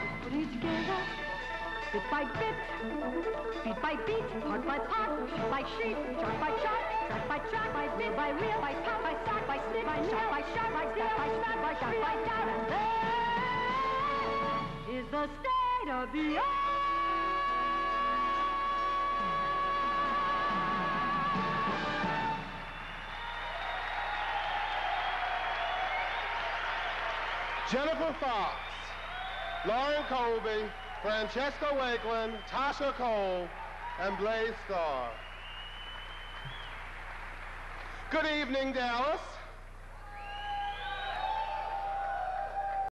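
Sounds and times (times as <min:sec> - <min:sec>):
audience applauding: 0:21.9 - 0:39.2, 0:40.0 - 0:42.9.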